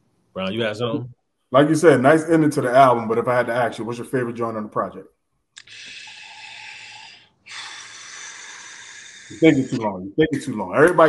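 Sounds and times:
man breathing heavily: 5.6 - 9.7.

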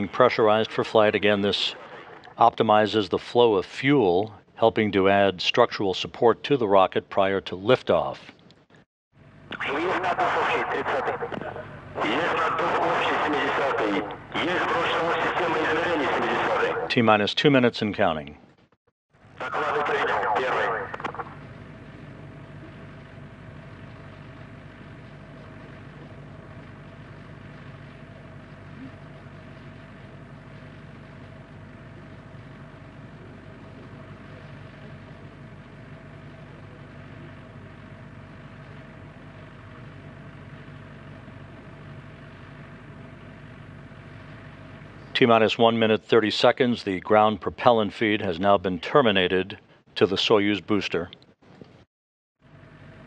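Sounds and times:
voice call: 0.0 - 8.2, 9.5 - 18.2, 19.4 - 21.5
steady hum with faint hiss: 19.2 - 51.8.

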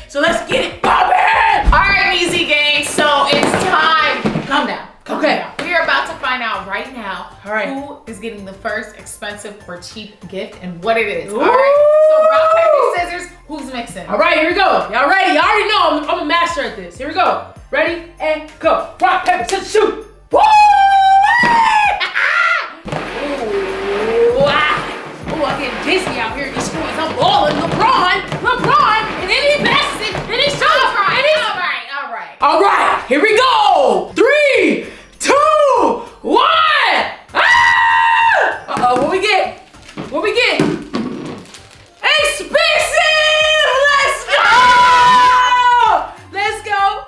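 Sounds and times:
people shrieking and shouting: 0.6 - 2.0, 20.3 - 25.0, 32.4 - 38.6, 42.5 - 46.2
man shouting woo: 20.3 - 22.0.

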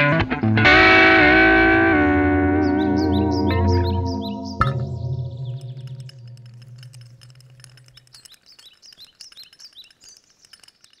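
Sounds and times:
electric guitar chord with echo: 0.1 - 6.0
rising bird chirps: 2.4 - 7.2.

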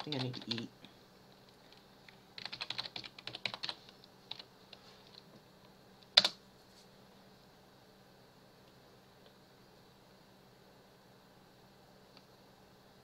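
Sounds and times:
computer keyboard typing: 0.0 - 0.7, 1.7 - 4.5, 6.1 - 6.4.

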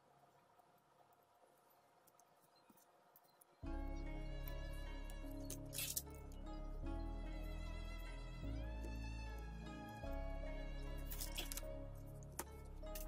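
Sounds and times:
background music: 3.6 - 13.0.

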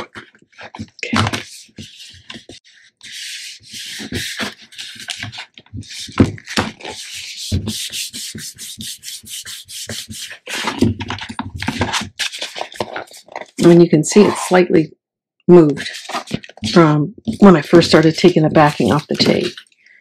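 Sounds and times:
hands rubbing paper: 0.0 - 10.9, 11.6 - 14.8, 15.6 - 19.7.

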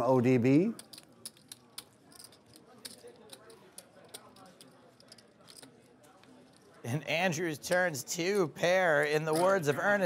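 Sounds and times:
faint background chatter: 0.0 - 10.0
poker chips clicking: 0.7 - 6.8.

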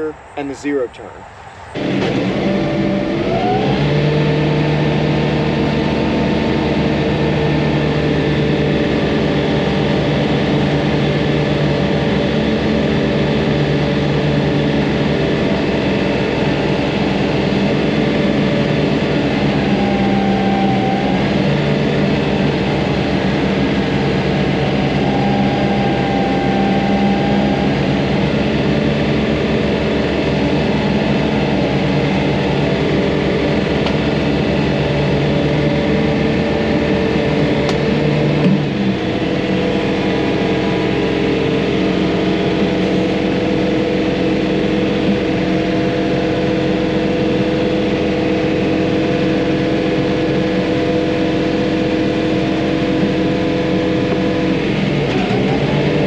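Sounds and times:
tractor diesel engine running: 0.0 - 56.0
mower deck cutting: 1.8 - 49.2.

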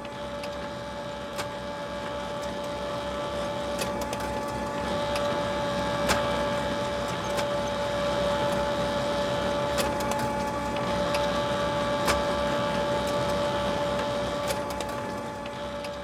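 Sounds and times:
machine whine: 0.0 - 16.0.

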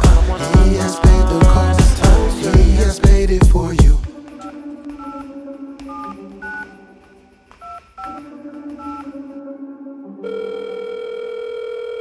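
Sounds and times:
backing music: 0.0 - 10.2
telephone keypad tones: 10.3 - 12.0.

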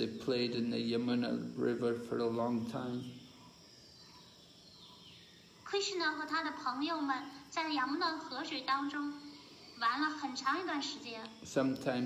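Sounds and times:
woman speaking: 5.6 - 11.4.

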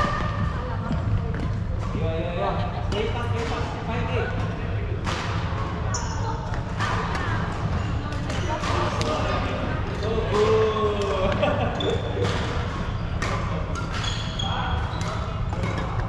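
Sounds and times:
shoe squeaks on wooden floor: 5.9 - 6.4, 14.0 - 14.5
racket hitting shuttlecock: 13.2 - 14.1, 15.0 - 16.0.

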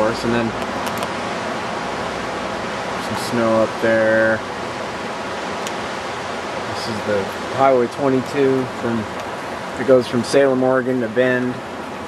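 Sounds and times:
river water rushing: 0.6 - 10.4, 11.6 - 12.0.

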